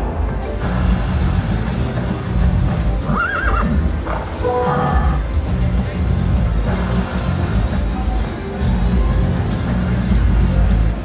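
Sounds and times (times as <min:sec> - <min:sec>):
recorded horse neigh: 0:03.0 - 0:05.2
slot machine win tones: 0:04.4 - 0:05.2.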